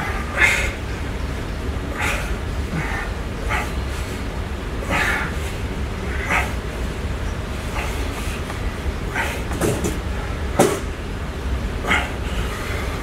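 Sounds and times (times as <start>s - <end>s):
steady low hum: 0.0s - 13.0s
man breathing out hard: 4.8s - 6.7s.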